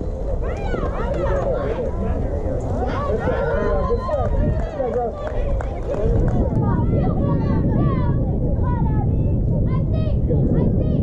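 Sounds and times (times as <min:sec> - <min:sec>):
steady low rumble: 0:00.0 - 0:11.0
girls calling and cheering: 0:00.2 - 0:11.0.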